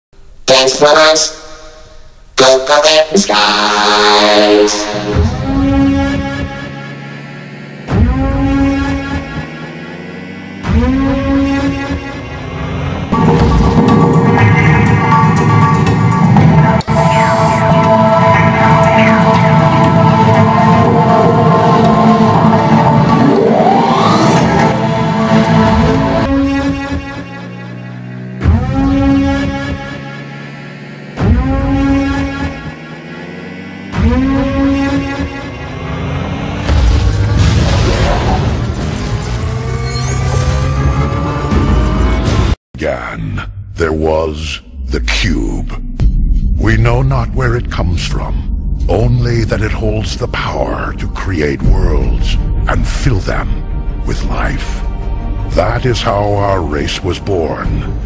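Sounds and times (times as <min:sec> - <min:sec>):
deep brassy cinematic hits: 0:03.6 - 0:42.6
deep buzzing synth swoop: 0:04.7 - 0:37.8.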